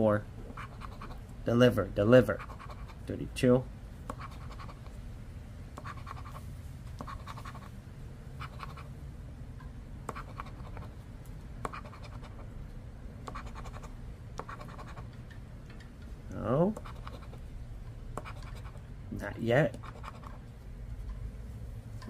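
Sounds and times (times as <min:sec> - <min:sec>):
coin scratching lottery ticket: 0:00.5 - 0:01.2, 0:02.3 - 0:03.1, 0:04.1 - 0:04.9, 0:05.8 - 0:06.4, 0:07.0 - 0:07.7, 0:08.4 - 0:08.9, 0:10.1 - 0:10.9, 0:11.7 - 0:12.5, 0:13.3 - 0:15.1, 0:16.8 - 0:17.4, 0:18.2 - 0:18.8, 0:19.8 - 0:20.4.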